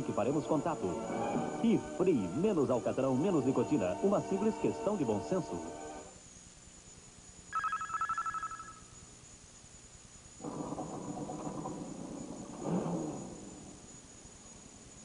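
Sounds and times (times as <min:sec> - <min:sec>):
telephone bell ringing: 0:07.5 - 0:08.8.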